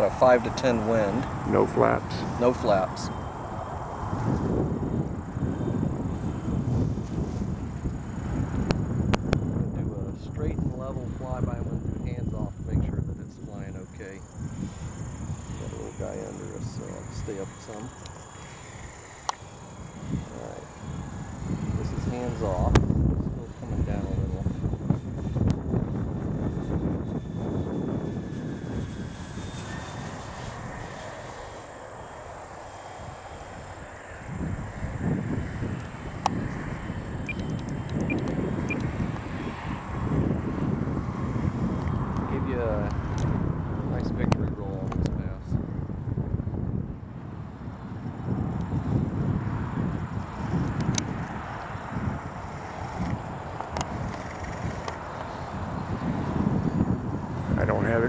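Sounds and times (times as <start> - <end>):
model plane electric motors: 0.0 - 58.0.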